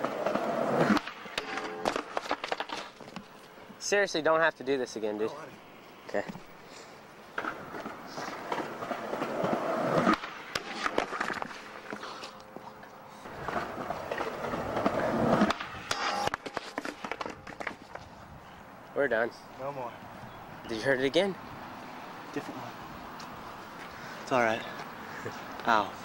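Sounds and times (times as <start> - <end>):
skateboard clack: 0.0 - 3.0, 7.4 - 12.0, 13.3 - 18.0
skateboard wheels rolling on wet pavement: 0.0 - 3.0, 7.3 - 12.2, 13.3 - 16.1
skateboard clattering: 0.0 - 3.3, 7.4 - 12.0, 13.3 - 18.0
voices: 18.6 - 26.0.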